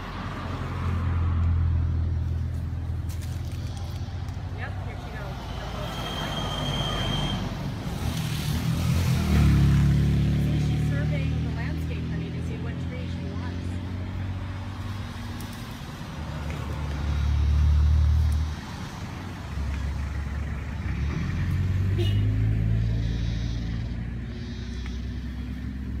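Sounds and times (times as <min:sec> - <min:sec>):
vehicle engine rumbling: 0:00.0 - 0:26.0.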